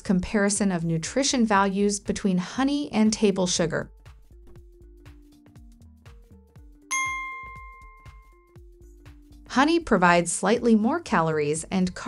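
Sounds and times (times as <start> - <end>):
background music with steady beat: 0.0 - 12.0
bell-like notification ding: 6.9 - 8.4.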